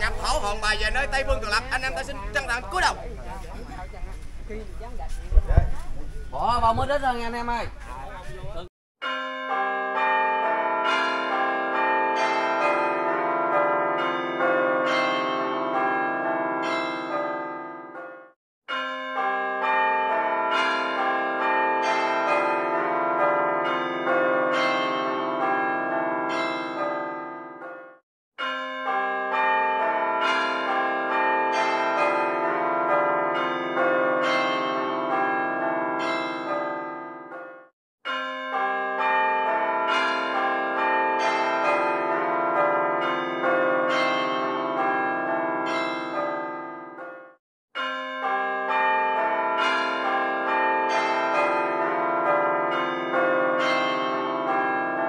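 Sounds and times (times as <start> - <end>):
bells pealing: 9.0 - 17.8, 18.7 - 27.5, 28.4 - 37.5, 38.1 - 47.2.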